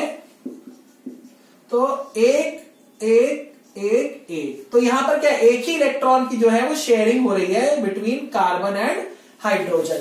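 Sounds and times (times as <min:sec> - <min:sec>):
marker writing on whiteboard: 0:00.0 - 0:06.1
person speaking: 0:00.0 - 0:10.0.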